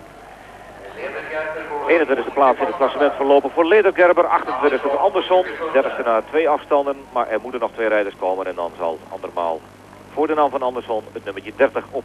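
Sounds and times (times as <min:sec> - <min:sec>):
low steady background noise: 0:00.0 - 0:12.0
man speaking: 0:00.8 - 0:12.0.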